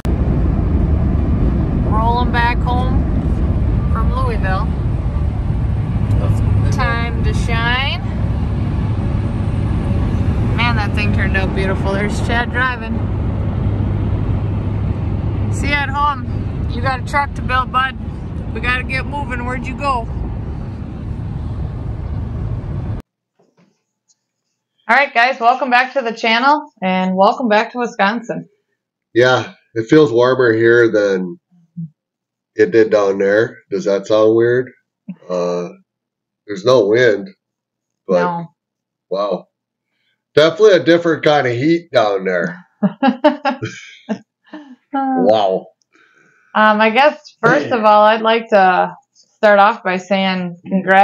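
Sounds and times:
car cabin road and engine rumble: 0.0s - 23.0s, 47.4s - 48.2s
voices talking: 1.9s - 3.0s, 4.0s - 4.7s, 6.1s - 8.2s, 10.5s - 13.0s, 15.5s - 20.1s, 24.9s - 28.4s, 29.2s - 31.4s, 32.6s - 35.8s, 36.5s - 37.3s, 38.1s - 38.5s, 39.1s - 39.4s, 40.4s - 45.7s, 46.6s - 51.0s.

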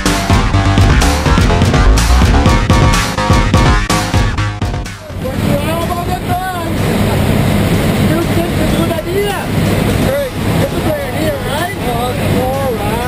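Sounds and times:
plane engine drone: 0.0s - 13.0s
people talking loudly: 5.0s - 13.0s
rushing air in cabin: 5.0s - 13.0s.

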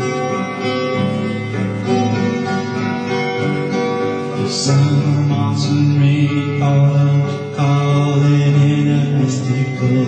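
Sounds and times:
guitar music: 0.0s - 10.0s.

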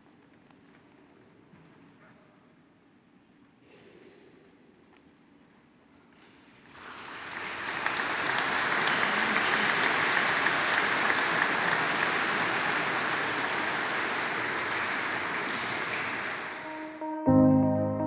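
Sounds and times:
congregation applauding: 6.7s - 17.1s.

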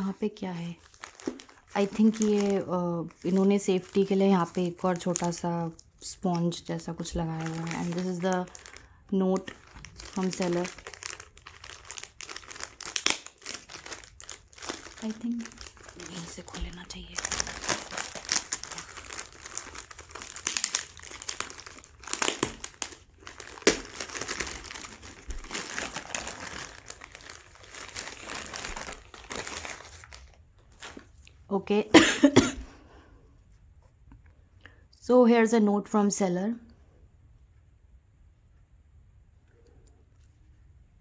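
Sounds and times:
plastic packaging crinkling: 0.0s - 31.4s.

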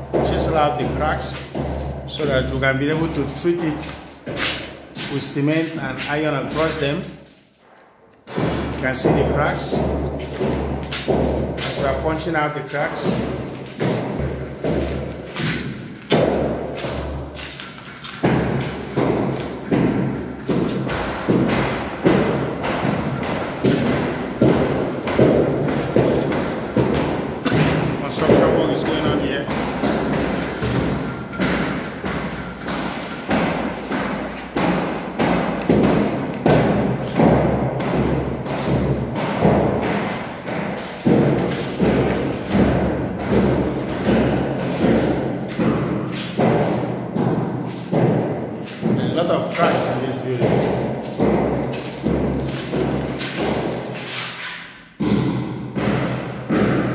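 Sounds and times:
hammer striking chisel on wall: 0.0s - 56.9s.

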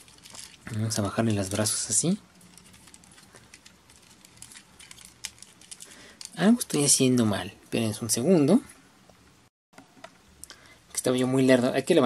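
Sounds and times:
plastic toy parts clicking: 0.0s - 0.6s, 2.5s - 6.4s.

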